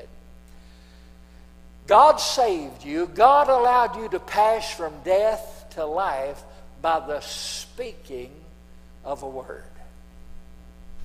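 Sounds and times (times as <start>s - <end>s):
electrical mains hum: 0.0s - 11.0s
man's voice: 1.9s - 9.8s.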